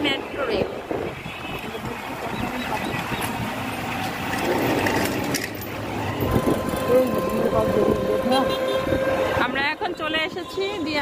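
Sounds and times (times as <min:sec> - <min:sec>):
motorbike engine and road noise: 0:00.0 - 0:11.0.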